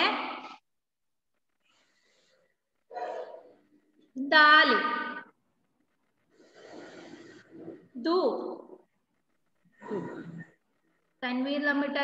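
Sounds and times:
breathy hiss into microphone: 6.2 - 7.7.

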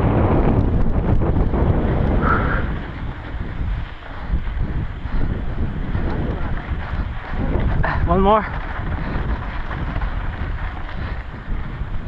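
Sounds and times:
bike tyre and trail rumble: 0.0 - 12.0
wind buffeting microphone: 0.0 - 12.0.

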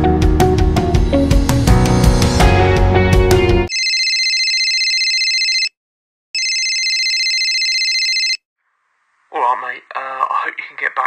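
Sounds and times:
telephone ringing: 3.7 - 5.8, 6.4 - 8.4.

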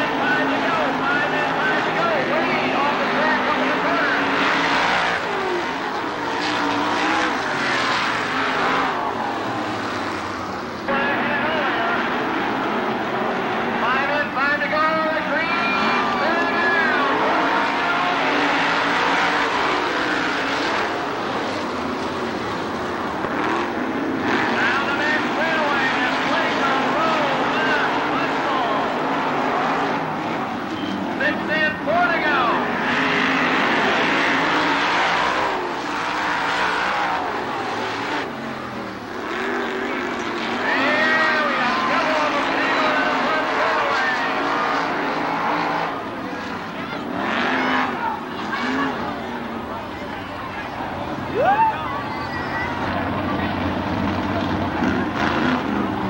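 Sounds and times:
race car engines running hard: 0.0 - 56.0.

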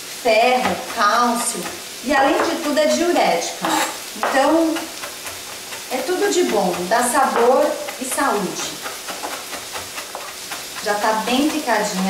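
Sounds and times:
mushrooms sizzling in a wok: 0.0 - 12.0
knife chopping on cutting board: 0.6 - 2.8, 3.6 - 12.0.

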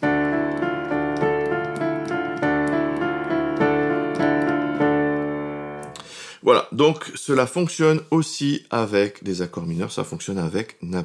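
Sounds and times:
piano arpeggio: 0.0 - 6.0.

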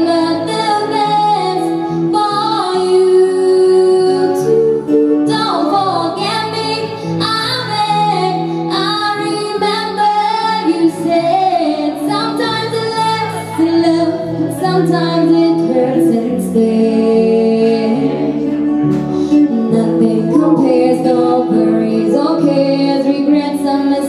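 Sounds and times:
sustained instrumental accompaniment: 0.0 - 24.0
woman singing into a microphone: 0.0 - 24.0.

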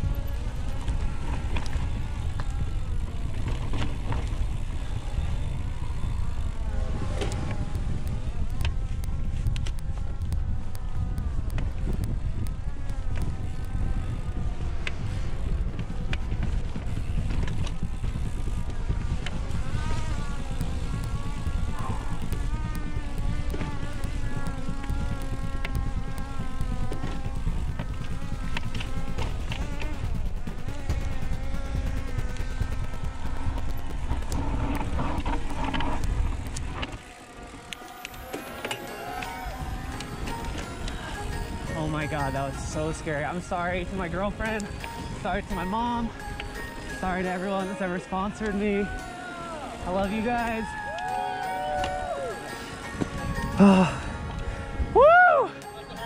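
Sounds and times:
heavy wind rumble on microphone: 0.0 - 37.0
background music: 37.7 - 56.0.

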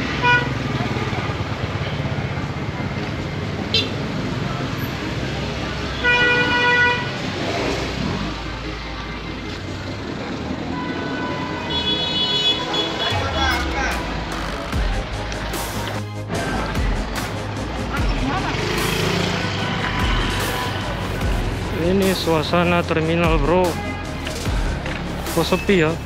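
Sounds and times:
street traffic noise: 0.0 - 26.0
vehicle horn: 0.2 - 0.6, 6.0 - 7.2, 10.7 - 13.7.

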